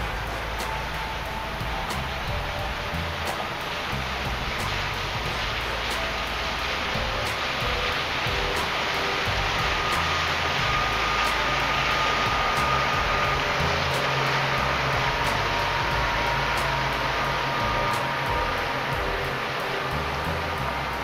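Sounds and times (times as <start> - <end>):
outboard motor whining: 0.0 - 21.0.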